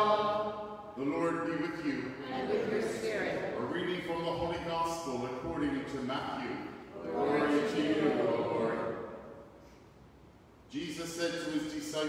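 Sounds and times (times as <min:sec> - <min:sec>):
man reading aloud: 0:00.0 - 0:08.9, 0:10.7 - 0:12.0.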